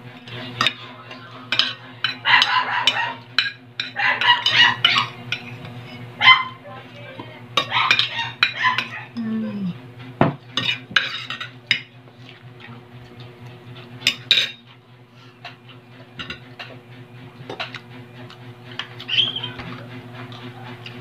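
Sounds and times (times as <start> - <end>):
dog barking: 2.2 - 3.2, 4.0 - 5.1, 6.2 - 6.6, 7.6 - 9.2.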